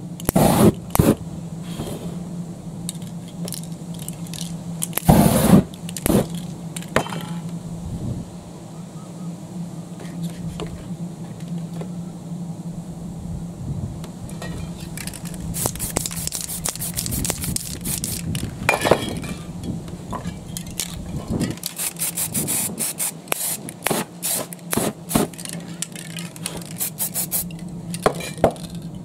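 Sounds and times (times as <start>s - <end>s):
steady low hum: 0.0s - 29.0s
spray paint can hissing: 0.3s - 1.2s, 14.9s - 18.5s, 21.6s - 25.4s, 26.2s - 27.6s.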